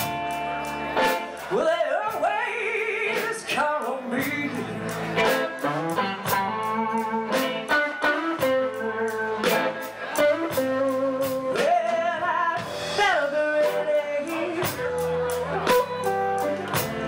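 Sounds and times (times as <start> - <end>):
blues-rock band playing: 0.0 - 17.0
electric guitar bending notes: 4.5 - 13.0, 13.7 - 17.0.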